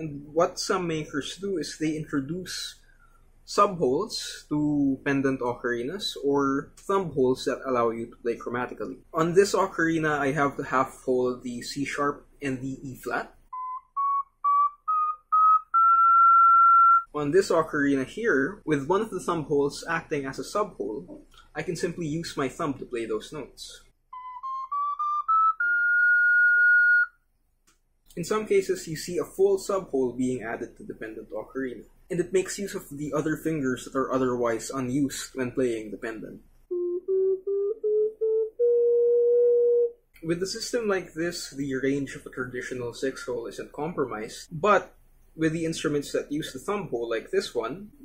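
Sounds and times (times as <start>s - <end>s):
ocarina notes: 13.5s - 17.2s, 24.1s - 27.2s, 36.7s - 40.2s.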